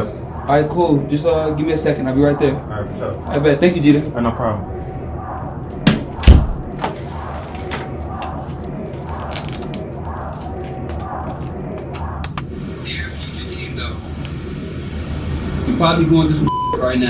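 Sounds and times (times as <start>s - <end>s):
steady low rumble: 0.0s - 16.5s.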